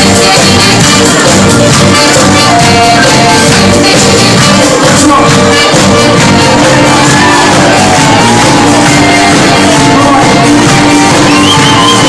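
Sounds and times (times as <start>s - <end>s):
live band playing a song: 0.0s - 12.0s.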